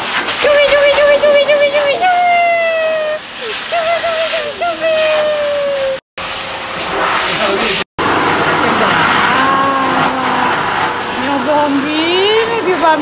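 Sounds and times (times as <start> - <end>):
pet dryer air rushing: 0.0 - 13.0.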